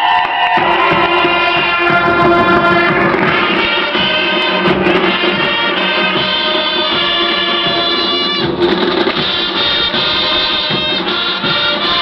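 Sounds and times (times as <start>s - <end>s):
marching band playing held chords: 0.0s - 12.0s.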